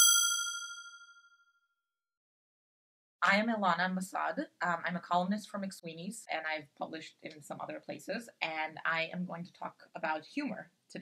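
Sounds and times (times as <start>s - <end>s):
bright bell ding: 0.0s - 1.3s.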